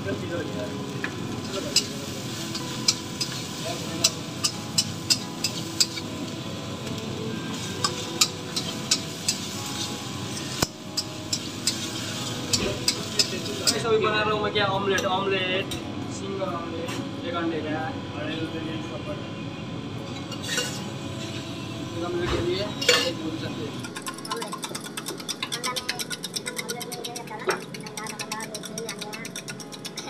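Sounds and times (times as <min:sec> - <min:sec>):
frying sizzle: 0:00.0 - 0:14.3
steady background hum: 0:00.0 - 0:30.0
steel kitchen utensils clinking: 0:01.4 - 0:06.0, 0:07.6 - 0:09.8, 0:10.4 - 0:13.9, 0:20.1 - 0:20.9, 0:22.7 - 0:30.0
metal ladle scraping a wok: 0:20.4 - 0:20.9.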